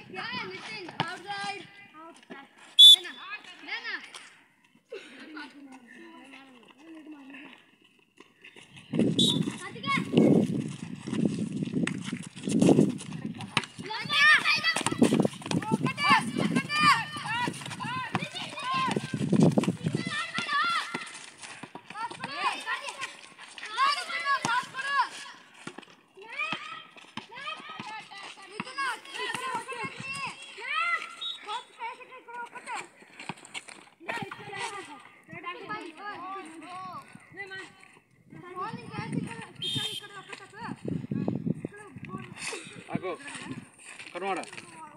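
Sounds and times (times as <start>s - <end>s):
running feet on concrete: 0.0s - 44.9s
children shouting: 19.8s - 21.2s.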